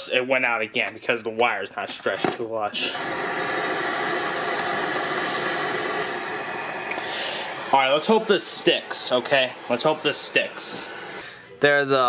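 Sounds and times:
tv static hiss and buzz: 2.8 - 11.3.

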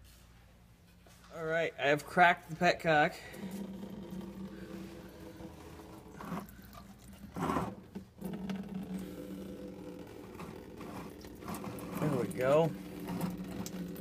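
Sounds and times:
coolant trickling into a pan: 3.4 - 14.0.

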